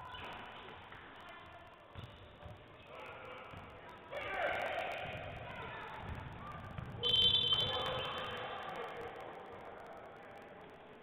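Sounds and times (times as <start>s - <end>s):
referee's whistle blast: 7.0s - 8.2s.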